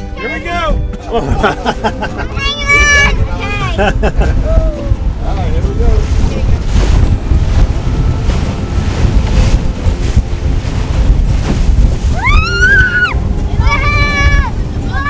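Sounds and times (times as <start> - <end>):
strong wind buffeting microphone: 0.0 - 15.0
water rushing along hull: 0.0 - 15.0.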